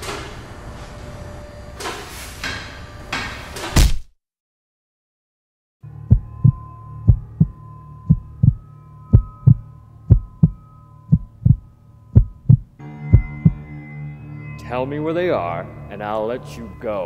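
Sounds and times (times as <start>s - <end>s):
low drone: 5.8s - 17.0s
heartbeat thumps: 6.1s - 13.6s
thin high tone: 6.7s - 17.0s.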